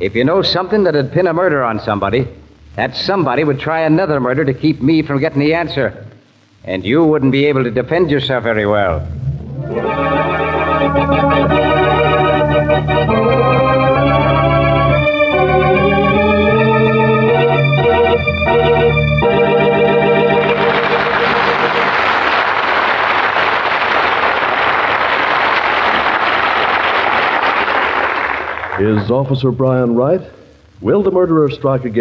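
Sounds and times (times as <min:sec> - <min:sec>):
organ chords: 0:00.0 - 0:32.0.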